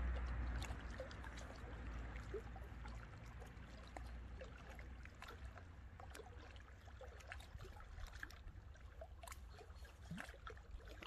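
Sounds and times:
steady low rumble: 0.0 - 6.0
waves lapping against rocks: 0.0 - 11.0.

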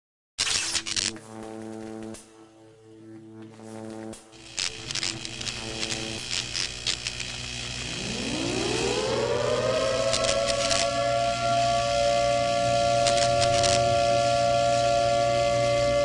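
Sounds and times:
glitchy static crackles: 0.4 - 2.2, 3.6 - 16.0
low droning hum: 2.6 - 16.0
rising swell into held tone: 7.8 - 16.0.

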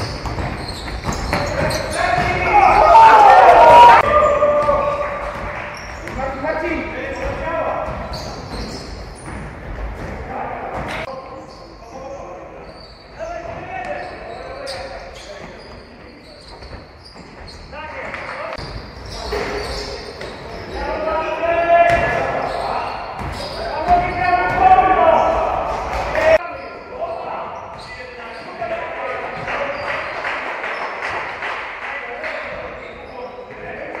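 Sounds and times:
basketball bouncing on hardwood: 0.1 - 2.5
players shouting: 1.4 - 5.5, 20.7 - 26.4.

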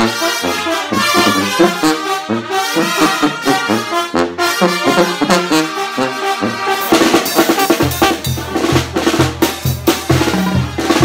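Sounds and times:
snare drum strokes and rolls: 5.2 - 11.0
bass drum: 7.2 - 11.0.

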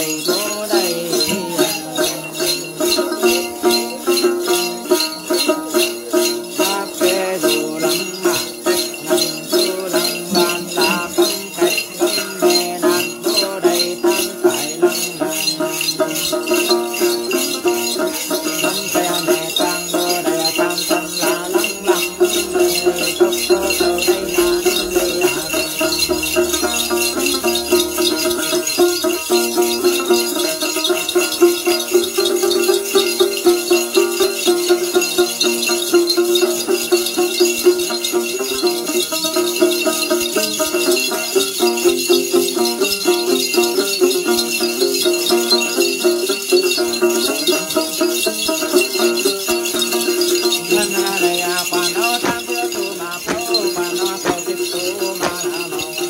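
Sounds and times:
small metal bells jingling: 0.0 - 56.0
steady pitched tone: 5.7 - 33.4.

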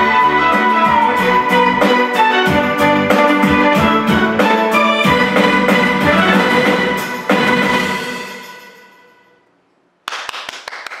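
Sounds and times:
dance music chord: 0.0 - 9.3
hands clapping: 10.0 - 11.0.

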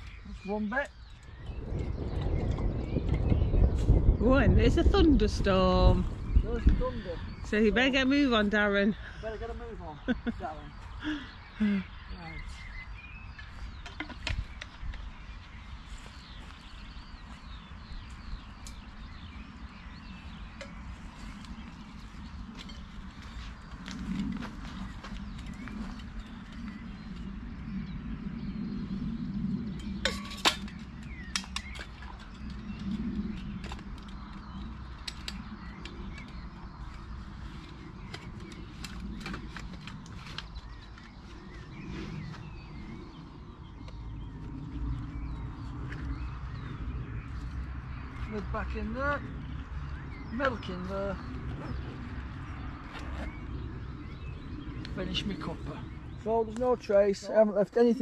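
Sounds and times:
low outdoor rumble: 0.0 - 58.0
bird chirps: 6.0 - 58.0.

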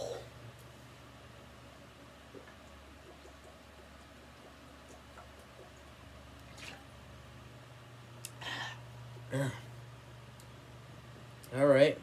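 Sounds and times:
steady low hum: 0.0 - 12.0
person gulping soda: 2.2 - 7.0.

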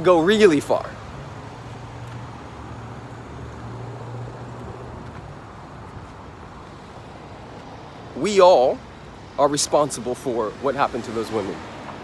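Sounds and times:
road noise: 0.0 - 12.0
traffic engine hum: 0.0 - 12.0.

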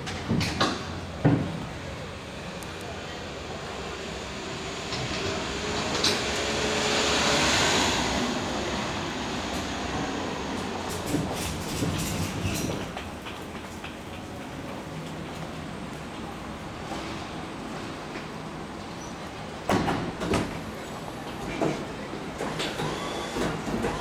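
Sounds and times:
passing vehicle rushing: 4.1 - 10.5.

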